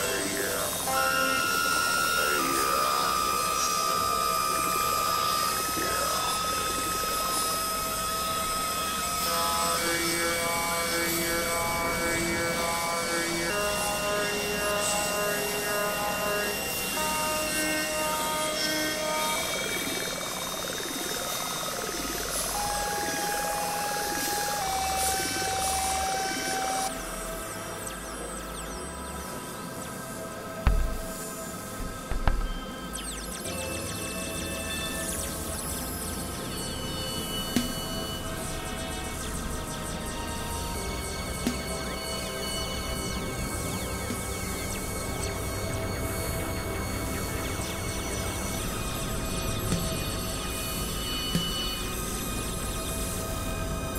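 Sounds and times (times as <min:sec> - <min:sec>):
swooping synthesizer tones: 0:13.6 - 0:45.4
low thuds: 0:30.6 - 0:31.2.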